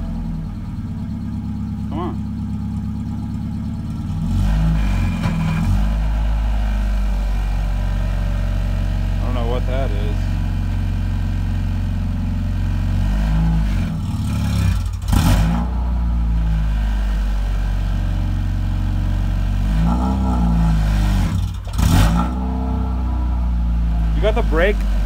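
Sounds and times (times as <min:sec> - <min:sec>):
car engine idling and revving: 0:00.0 - 0:25.0.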